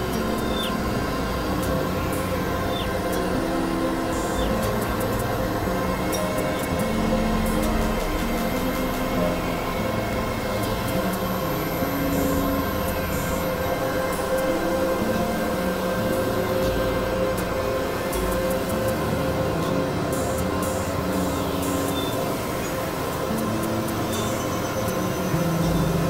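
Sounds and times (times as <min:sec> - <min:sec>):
synthesizer drone music: 0:00.0 - 0:26.0.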